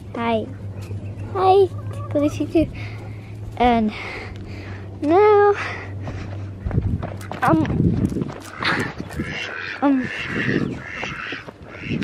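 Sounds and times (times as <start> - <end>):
ducks quacking: 0.2 - 3.3, 5.6 - 7.7, 8.3 - 12.0.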